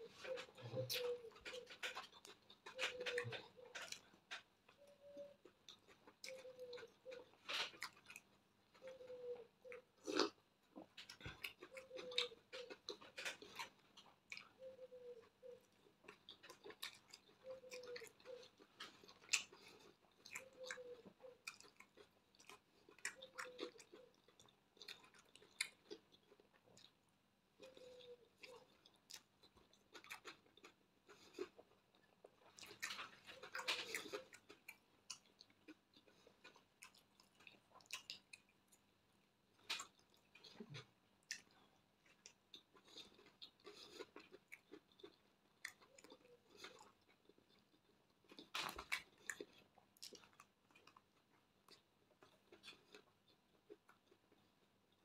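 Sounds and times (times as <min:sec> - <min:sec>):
person chewing: 0:00.0 - 0:55.0.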